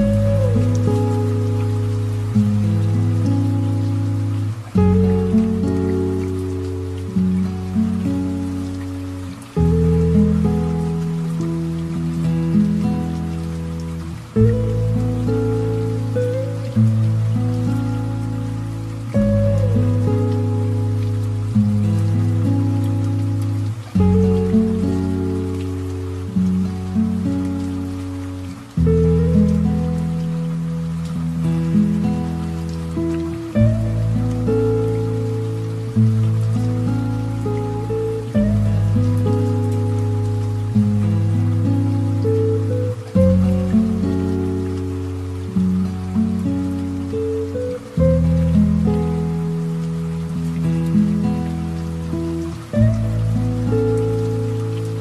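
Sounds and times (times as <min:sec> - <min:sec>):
light rain: 0:00.0 - 0:55.0.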